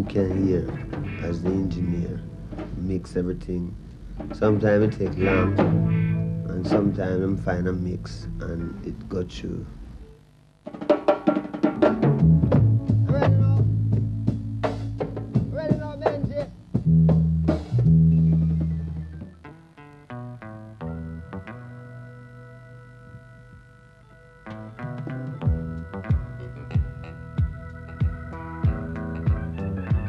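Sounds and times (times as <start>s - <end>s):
keyboard chords: 0.0s - 9.5s, 11.9s - 30.0s
reggae band music: 0.0s - 30.0s.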